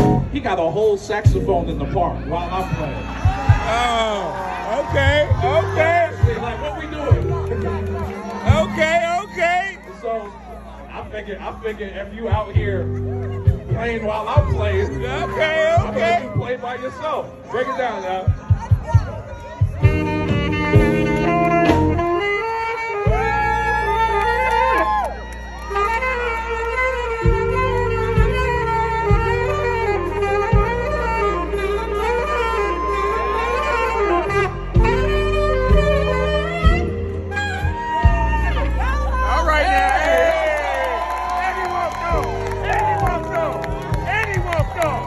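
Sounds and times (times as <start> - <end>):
saxophone playing: 0.0 - 0.4, 2.1 - 45.0
crowd noise: 0.0 - 45.0
jazz backing track: 0.0 - 45.0.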